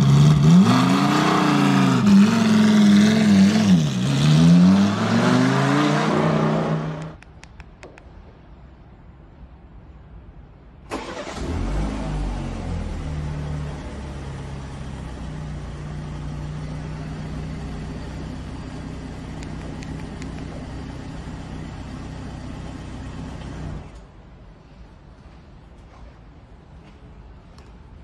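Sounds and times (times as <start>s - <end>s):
car engine starting and idling: 10.8s - 24.2s.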